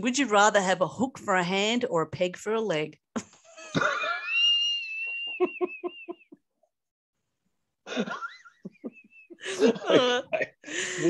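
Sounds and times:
people laughing hard: 3.6 - 6.4, 7.9 - 11.0.

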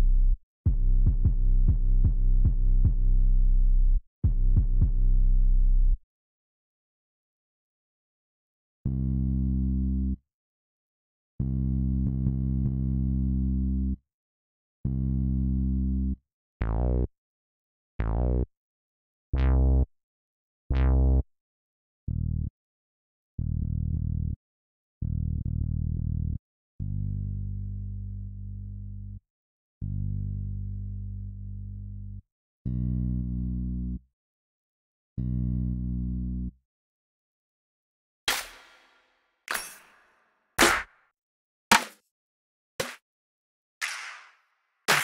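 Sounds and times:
sustained low bass notes: 0.0 - 6.0.

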